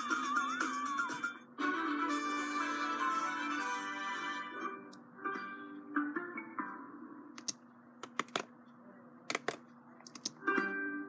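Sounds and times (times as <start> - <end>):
computer clicking: 7.4 - 8.5, 9.3 - 10.4.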